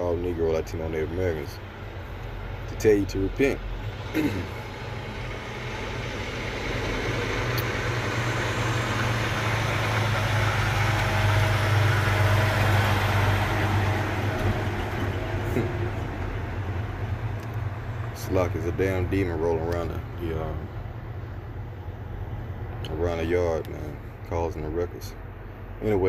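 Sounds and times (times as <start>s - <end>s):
vehicle passing close by: 3.4s - 22.7s.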